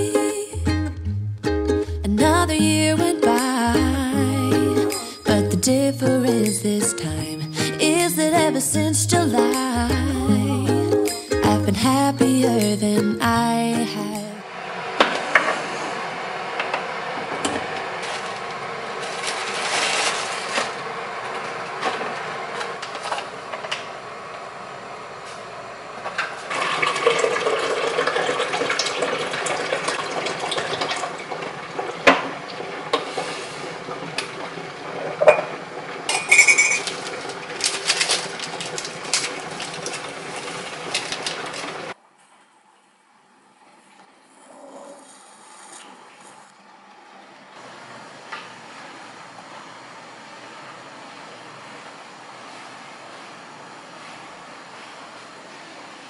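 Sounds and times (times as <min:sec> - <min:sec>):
coffee maker liquid splashing: 0:26.5 - 0:34.4
garment steamer hissing: 0:32.6 - 0:34.2
spoon clinking in ceramic mug: 0:36.2 - 0:36.8.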